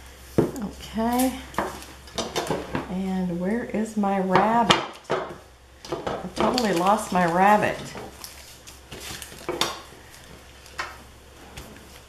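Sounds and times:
paper and craft items clicking on table: 5.9s - 9.9s.

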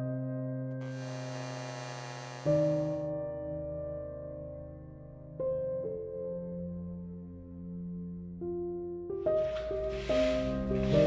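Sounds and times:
fluorescent lights buzzing: 0.8s - 3.0s.

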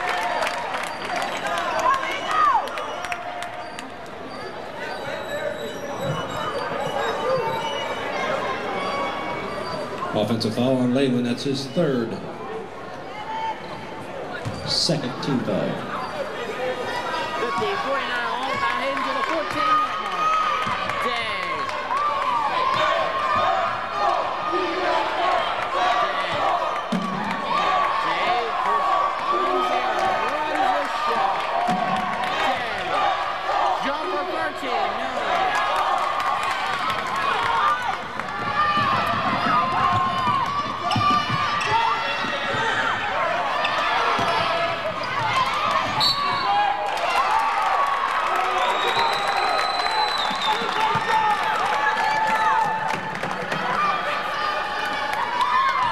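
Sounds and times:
spectators' voices and shouts: 0.0s - 55.9s
players moving on hardwood court: 36.6s - 46.6s
basketball bouncing: 38.2s - 43.0s.

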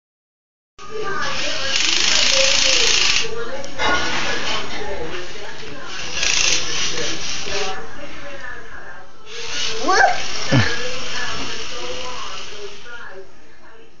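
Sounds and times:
toy drill whirring: 1.0s - 3.4s, 5.2s - 7.8s, 9.3s - 13.0s
young child talking: 9.6s - 10.6s.

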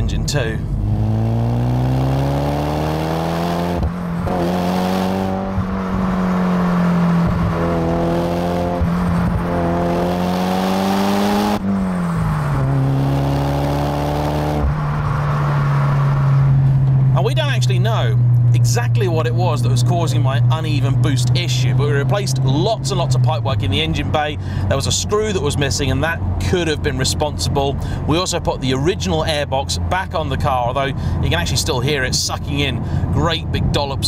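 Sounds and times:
car engine accelerating: 0.0s - 34.0s
road noise: 0.0s - 34.0s.

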